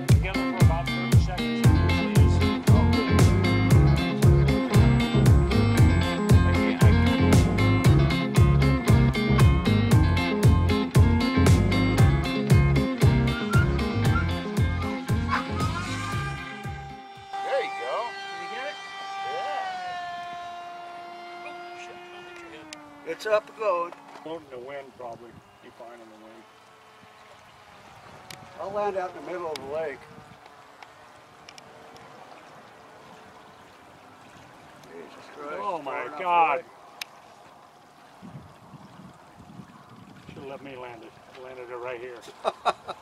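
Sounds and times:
model plane motor whining: 14.3s - 32.2s
wind rumble on microphone: 24.4s - 25.9s, 26.9s - 32.2s, 37.8s - 41.3s.

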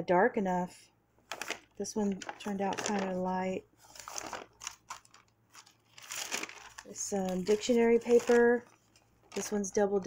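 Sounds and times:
paper sheets rustling and crinkling: 1.3s - 10.0s.

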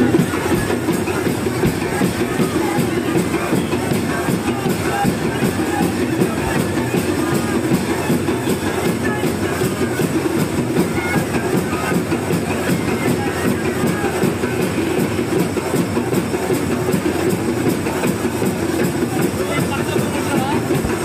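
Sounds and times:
crowd din: 0.0s - 21.0s
music: 0.0s - 21.0s.

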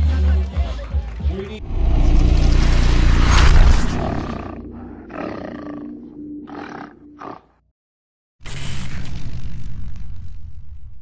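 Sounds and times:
music: 0.0s - 1.6s
animal roars: 3.8s - 7.5s.

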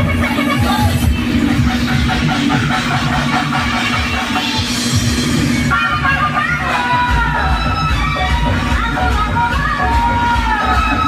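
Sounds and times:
loud dance music with bass: 0.0s - 11.0s.

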